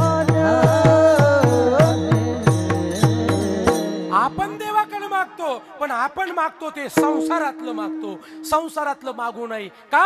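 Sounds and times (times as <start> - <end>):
man singing with sliding pitch: 0.0 - 6.1, 6.8 - 9.3
drum strokes: 7.0 - 8.8.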